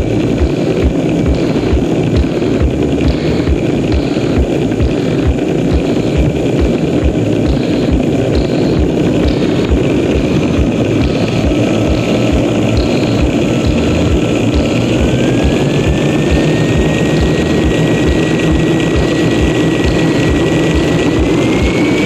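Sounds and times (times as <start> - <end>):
jet engine roaring: 0.0 - 22.0
whine climbing in pitch: 0.0 - 22.0.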